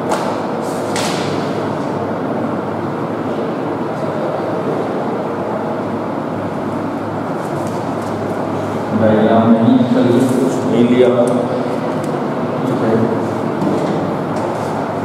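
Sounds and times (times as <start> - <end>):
steady rushing fan noise: 0.0 - 15.0.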